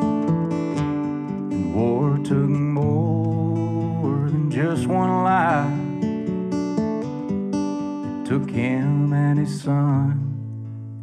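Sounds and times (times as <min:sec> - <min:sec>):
acoustic guitar picking: 0:00.0 - 0:11.0.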